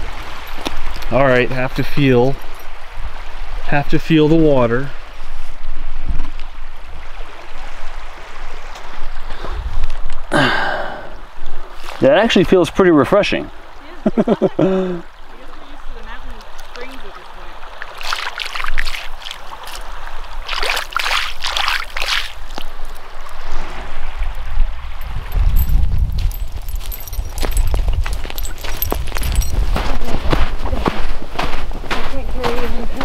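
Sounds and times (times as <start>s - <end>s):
waves lapping at shore: 0.0s - 33.0s
wind rumbling on microphone: 5.0s - 10.3s, 22.4s - 33.0s
footsteps crunching on sand: 18.0s - 23.7s, 24.9s - 33.0s.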